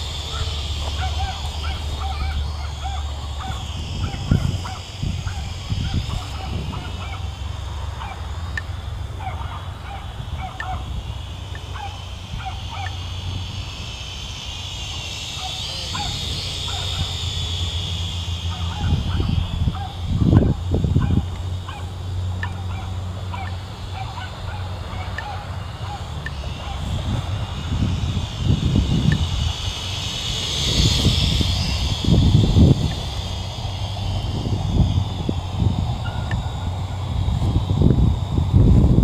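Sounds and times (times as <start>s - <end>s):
drone propellers whining: 0.0s - 39.0s.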